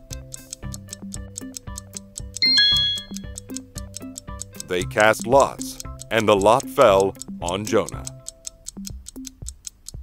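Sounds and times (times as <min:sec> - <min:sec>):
clock-like ticking beat: 0:00.0 - 0:10.0
quiz background music: 0:00.0 - 0:10.0.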